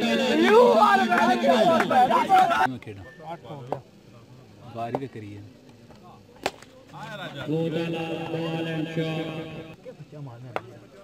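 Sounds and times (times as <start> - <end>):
faint men talking: 0.0 - 11.0.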